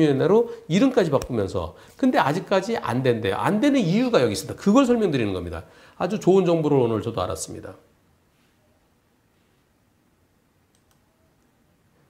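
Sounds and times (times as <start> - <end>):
faint computer clicks: 10.7 - 11.5.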